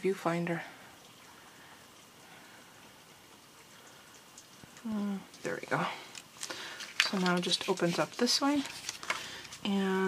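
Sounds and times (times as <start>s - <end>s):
melting snow dripping: 0.0s - 10.0s.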